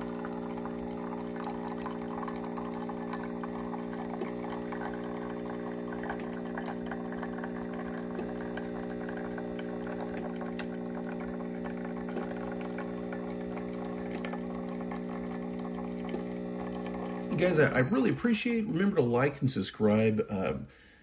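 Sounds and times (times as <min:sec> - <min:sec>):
espresso machine pump humming: 0:00.0 - 0:19.0.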